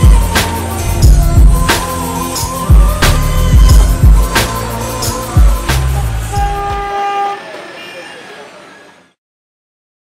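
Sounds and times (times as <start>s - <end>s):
street traffic: 0.0s - 9.2s
voices: 1.7s - 9.2s
vehicle horn: 6.1s - 8.3s.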